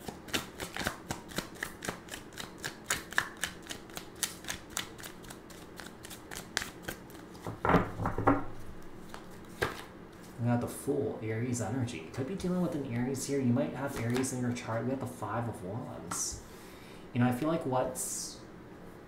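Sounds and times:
cards being shuffled: 0:00.0 - 0:10.4, 0:12.4 - 0:14.8.

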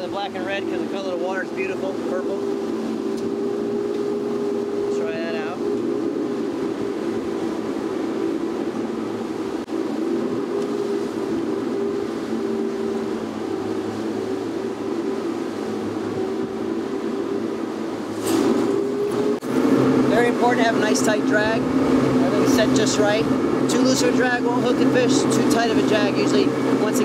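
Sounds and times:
outboard engines humming: 0:00.0 - 0:27.0
rush of boat wake: 0:00.0 - 0:27.0.

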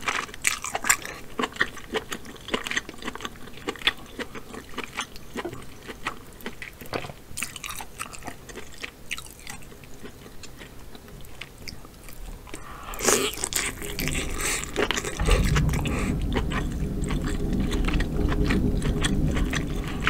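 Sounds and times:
chewing: 0:07.4 - 0:16.6.

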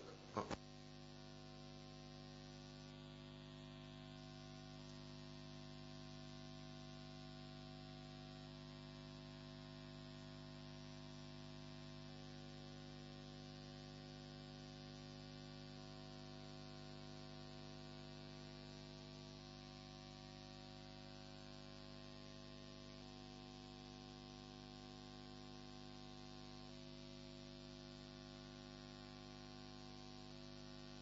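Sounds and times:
electrical hum: 0:00.0 - 0:07.7.

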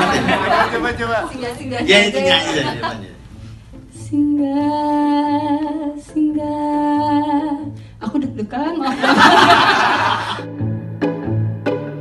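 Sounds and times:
audience cheering and laughter: 0:00.0 - 0:01.6, 0:08.8 - 0:10.5
woman singing through microphone: 0:04.0 - 0:08.9
music with plucked strings: 0:09.5 - 0:12.0.

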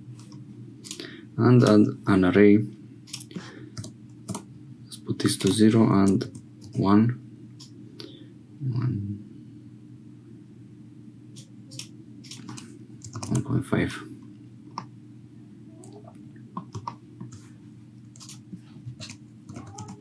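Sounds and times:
steady low hum: 0:00.0 - 0:20.0
keyboard keystrokes: 0:11.7 - 0:13.4, 0:16.6 - 0:17.0.

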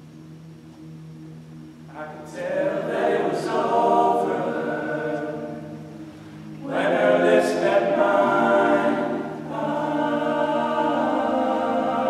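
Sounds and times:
male choir singing in harmony: 0:01.9 - 0:12.0.

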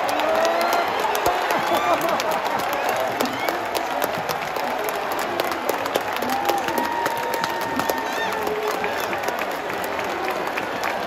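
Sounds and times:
stadium crowd applauding: 0:00.0 - 0:11.0.

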